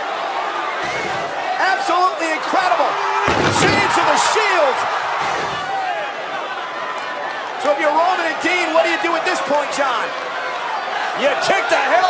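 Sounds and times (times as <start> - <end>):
crowd shouting and cheering: 0.0 - 12.0
body crashing through table: 3.2 - 4.1.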